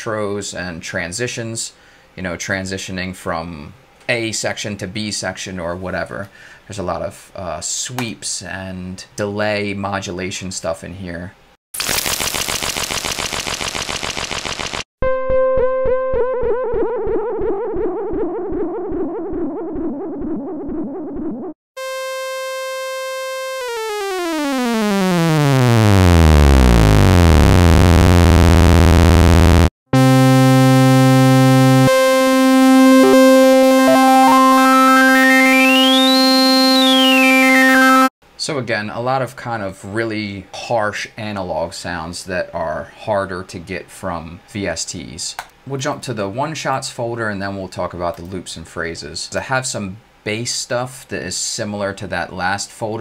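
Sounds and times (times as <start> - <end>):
harsh synth buzz: 21.8 - 38.1
pulsing synth tone: 21.8 - 38.1
synth note sweeping down: 21.8 - 38.1
synth drone gliding in pitch: 30.0 - 38.1.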